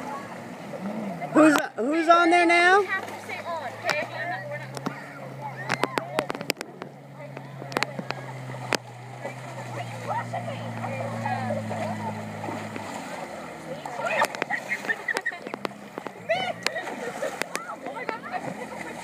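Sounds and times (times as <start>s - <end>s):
jet ski engine hum: 0.0s - 19.0s
splashing in shallow water: 0.0s - 19.0s
girls' excited voices: 1.0s - 6.3s, 9.2s - 12.4s, 13.6s - 19.0s.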